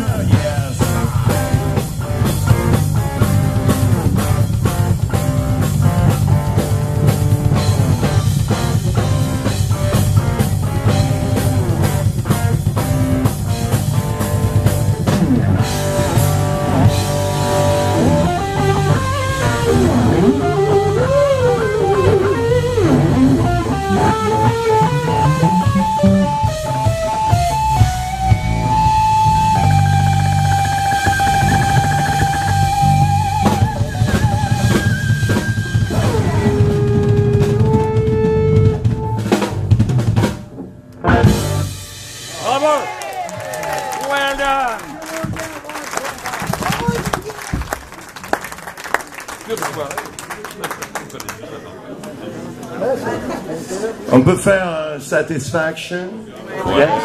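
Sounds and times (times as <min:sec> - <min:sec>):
live rock band playing: 0:00.0 - 0:45.4.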